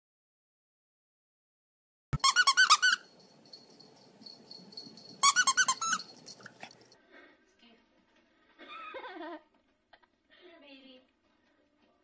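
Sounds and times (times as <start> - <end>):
rapid high squeaks: 4.7 - 6.4.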